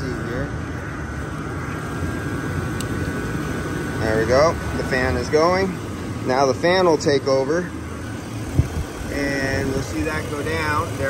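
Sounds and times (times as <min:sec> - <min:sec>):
car engine running: 0:00.0 - 0:11.0
cooling fan whirring: 0:00.0 - 0:11.0.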